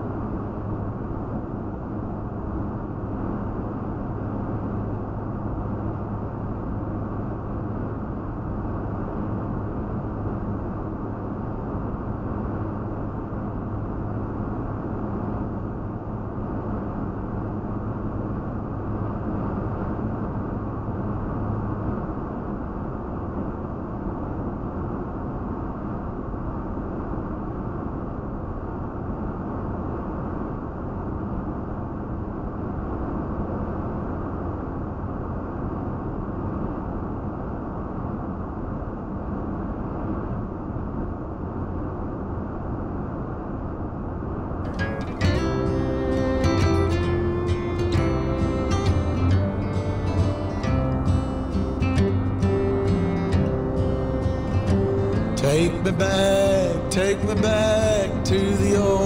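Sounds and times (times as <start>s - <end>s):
truck cabin road and engine noise: 44.6s - 59.0s.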